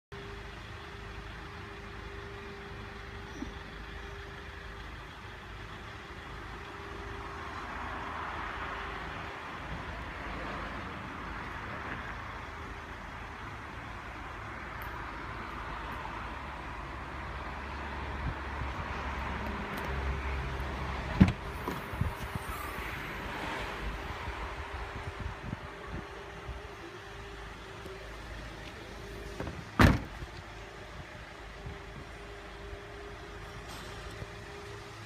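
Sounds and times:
vehicle rumble: 0.1s - 35.0s.

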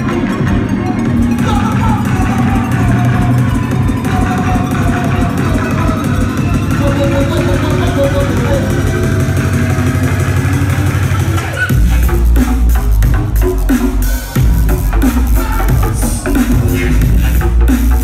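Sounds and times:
drum and bass music over sound system: 0.0s - 18.0s
person talking on microphone: 4.3s - 9.5s.

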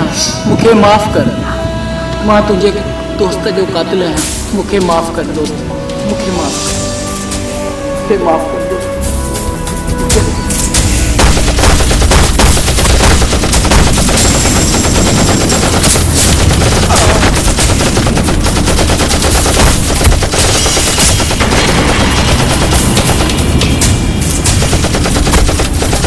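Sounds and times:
automatic rifle fire: 11.1s - 26.0s.

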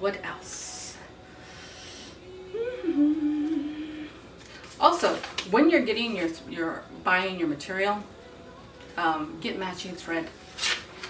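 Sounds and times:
woman humming: 2.2s - 4.3s.

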